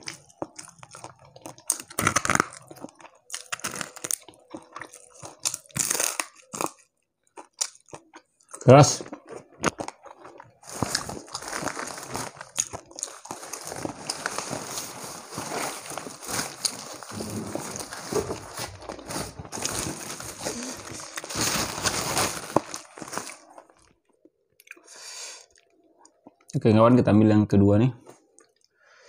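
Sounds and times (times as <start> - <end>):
crunching and chewing fried fish: 0.0 - 26.5.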